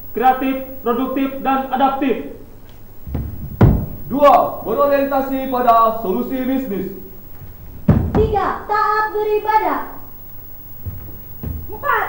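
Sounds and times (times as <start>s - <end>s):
sharp thump: 3.1s - 4.7s, 7.4s - 8.7s.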